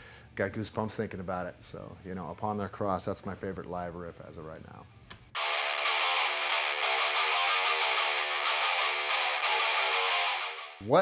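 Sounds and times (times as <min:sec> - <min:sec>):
distorted electric guitar music: 0:05.4 - 0:11.0.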